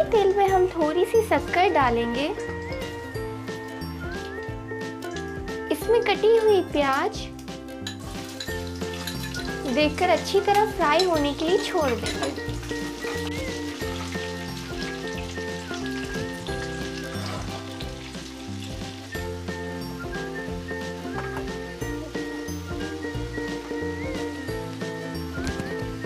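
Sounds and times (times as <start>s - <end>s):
light background music: 0.0s - 26.0s
onions sizzling in hot oil: 0.0s - 26.0s
metal spoon scraping a pan: 7.8s - 9.7s, 17.1s - 17.9s.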